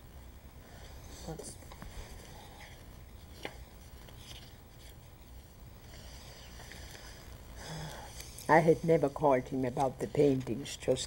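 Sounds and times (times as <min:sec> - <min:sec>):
steady low hum and hiss: 0:00.0 - 0:11.0.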